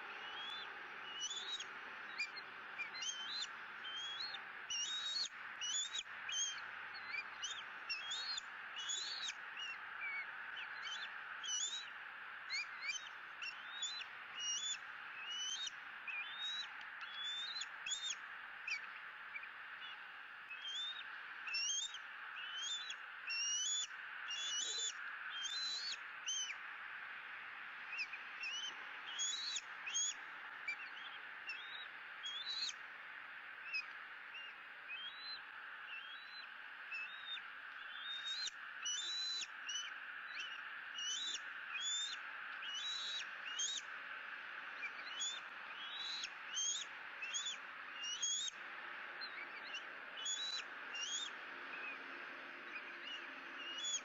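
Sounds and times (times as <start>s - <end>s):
steady background hiss: 0.0s - 54.0s
eaglet begging chirps: 0.1s - 26.7s, 27.8s - 32.8s, 33.6s - 52.0s, 52.6s - 54.0s.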